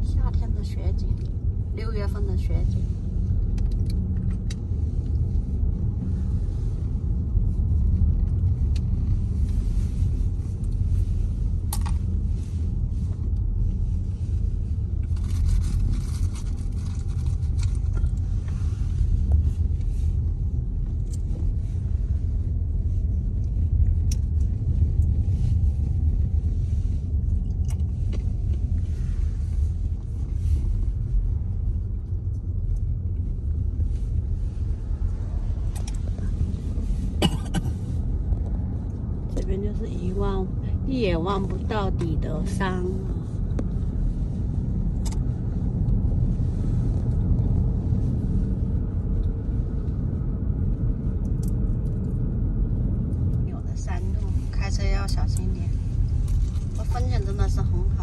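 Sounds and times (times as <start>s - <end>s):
car road noise rumble: 0.0s - 58.0s.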